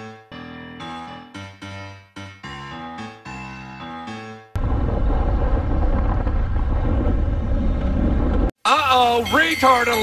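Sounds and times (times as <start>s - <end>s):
piano-like intro music: 0.0s - 4.6s.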